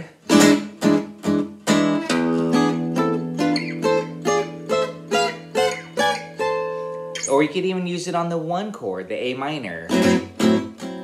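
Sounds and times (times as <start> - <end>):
acoustic guitar strummed chords: 0.2 - 7.6, 9.9 - 11.0.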